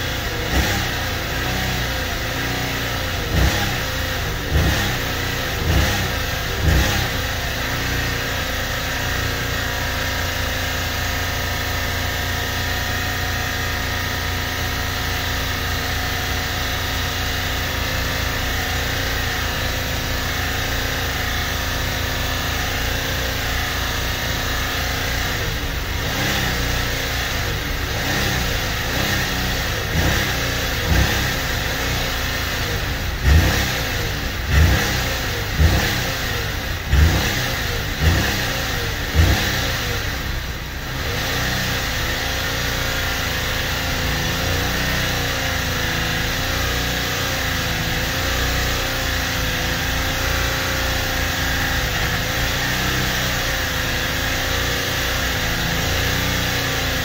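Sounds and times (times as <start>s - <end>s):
car engine at high revs: 0.0s - 57.0s.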